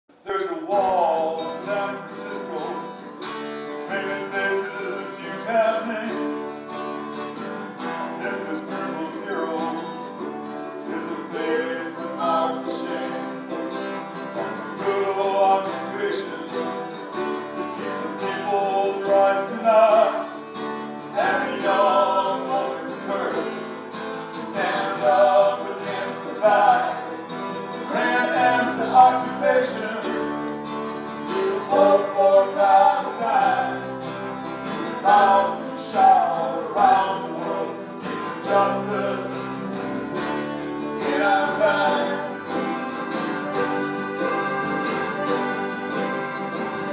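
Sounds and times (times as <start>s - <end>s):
mandolin: 0.1s - 46.9s
strummed acoustic guitars: 0.1s - 46.9s
people singing: 0.2s - 3.1s, 3.8s - 6.5s, 7.6s - 46.9s
accordion: 1.0s - 46.9s
upright bass: 21.1s - 46.9s.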